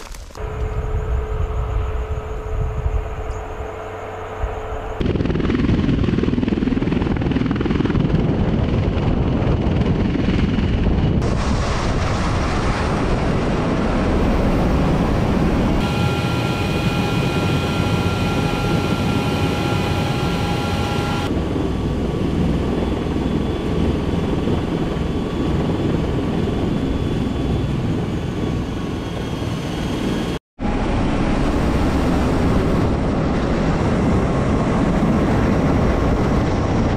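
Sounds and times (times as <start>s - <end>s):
aircraft engines rumbling: 0.3s - 36.9s
steady whine: 0.4s - 6.6s, 13.4s - 27.6s.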